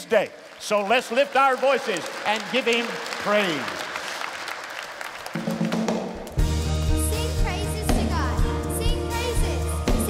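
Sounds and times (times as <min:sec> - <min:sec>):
band with bass and drums: 0:05.4 - 0:10.0.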